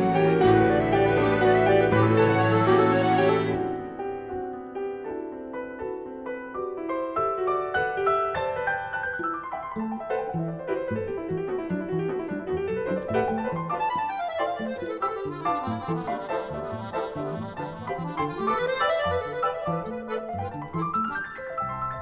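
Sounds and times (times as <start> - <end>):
accordion holding long tones: 0.0 - 4.0, 13.8 - 21.2
piano runs: 0.0 - 6.2, 7.6 - 22.0.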